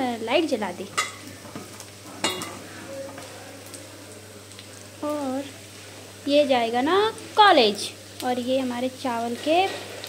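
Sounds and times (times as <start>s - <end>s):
oil sizzling while deep-frying: 0.0s - 10.0s.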